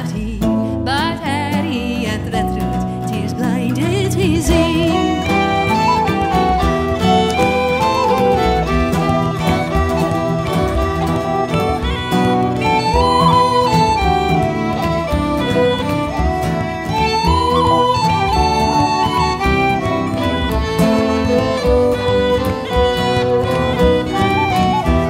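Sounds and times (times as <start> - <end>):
guitar accompaniment: 0.0 - 25.0
fiddle melody: 1.3 - 25.0.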